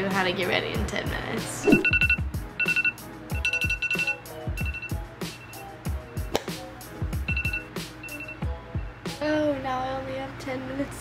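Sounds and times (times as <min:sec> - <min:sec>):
background music with steady beat: 0:00.0 - 0:11.0
smartphone alarm beeping: 0:01.6 - 0:05.7, 0:07.2 - 0:08.9.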